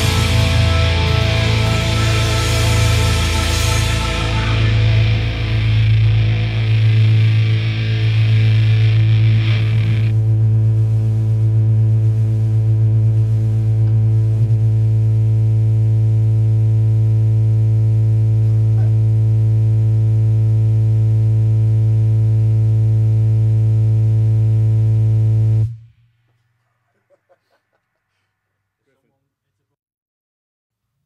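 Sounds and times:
distorted low drone: 0.0 - 25.9.

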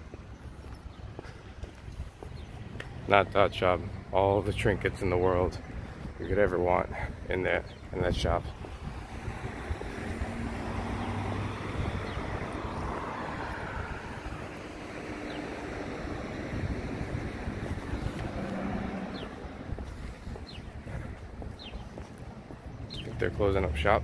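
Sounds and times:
wind buffeting microphone: 0.0 - 24.0
cars driving past: 7.7 - 24.0.

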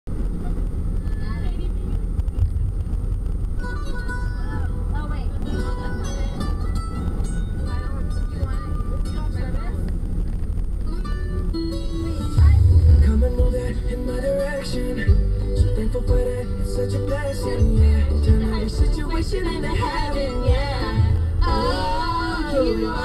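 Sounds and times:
van cabin road rumble: 0.0 - 23.0
women chatting: 1.1 - 2.0, 4.4 - 6.4, 7.6 - 9.9, 12.0 - 12.9, 18.3 - 20.5
background music: 11.2 - 23.0.

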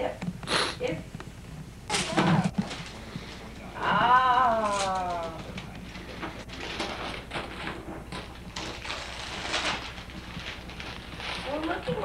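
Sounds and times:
wrapping paper rustling: 1.9 - 12.0.

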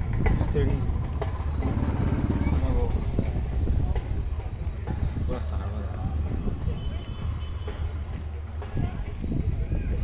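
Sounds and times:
faint voices: 0.2 - 10.0.

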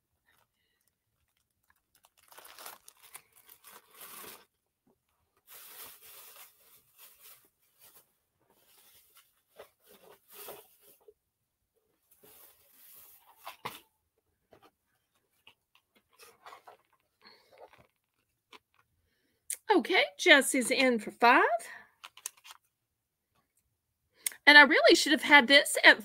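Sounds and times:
rustling and crinkling: 0.2 - 11.2, 11.9 - 19.0.

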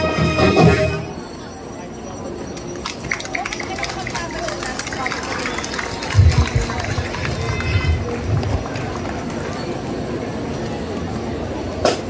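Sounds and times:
outdoor crowd chatter: 0.0 - 12.0.

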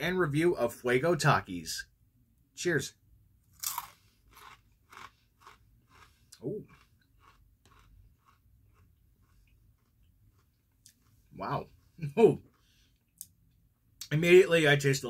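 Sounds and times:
tortilla chip crunching: 3.5 - 11.2.

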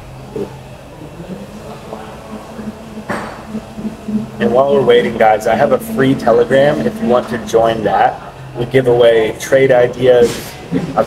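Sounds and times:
faint public background noise: 0.0 - 11.0
steady low hum: 0.0 - 11.0.

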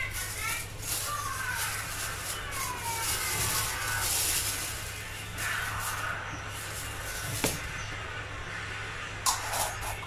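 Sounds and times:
plastic bag rustling and crinkling: 0.0 - 7.8.

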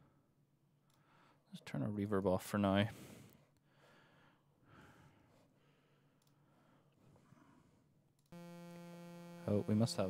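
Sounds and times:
soft breath: 0.9 - 1.5, 2.9 - 8.0.

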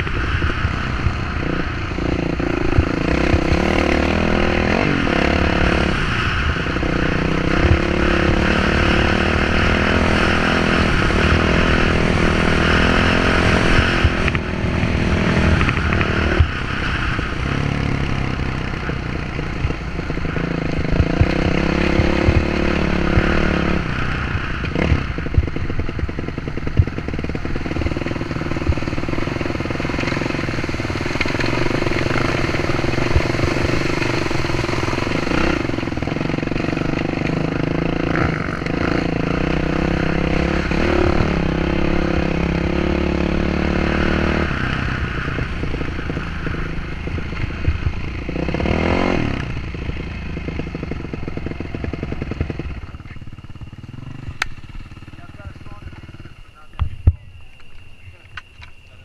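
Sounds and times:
dirt bike engine: 0.0 - 59.0.

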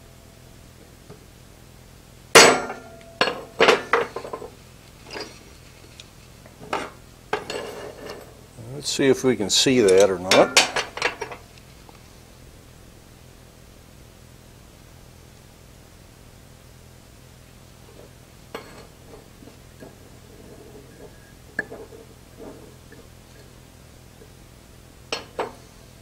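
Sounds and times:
low shop hum: 0.0 - 26.0.

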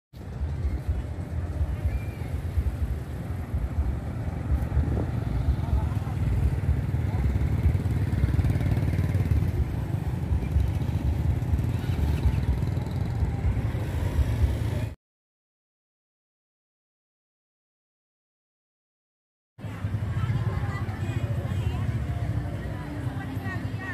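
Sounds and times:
motorbike engines passing: 0.2 - 15.0, 19.6 - 23.9
people's voices: 0.2 - 15.0, 19.6 - 23.9.

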